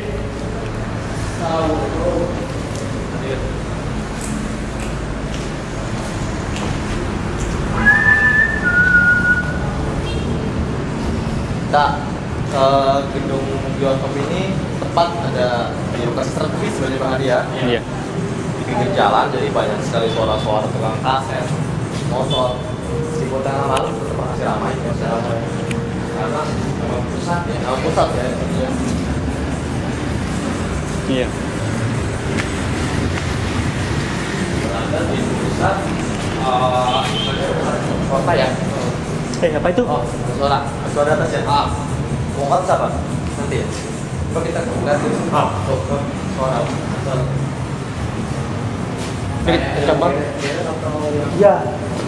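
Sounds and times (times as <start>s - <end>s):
city traffic rumble: 0.0s - 52.0s
motorbikes passing: 0.0s - 52.0s
two-note whistle: 7.7s - 9.7s.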